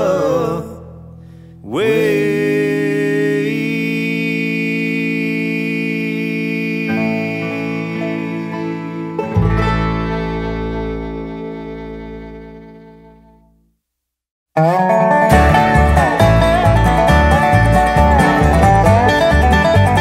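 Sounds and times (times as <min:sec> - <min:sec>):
bluegrass string band chord: 0:07.3 - 0:13.5, 0:14.6 - 0:20.0
deep low note: 0:09.2 - 0:13.4.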